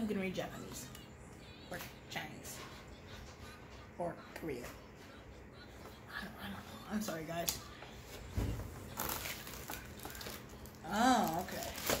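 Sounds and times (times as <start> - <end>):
plastic bag crinkling: 8.9 - 12.0.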